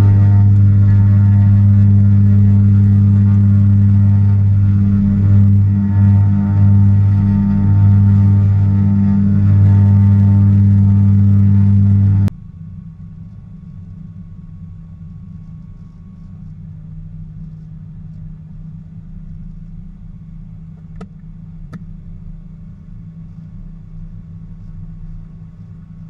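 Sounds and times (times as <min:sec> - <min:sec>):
piston engines droning: 0:00.0 - 0:13.1.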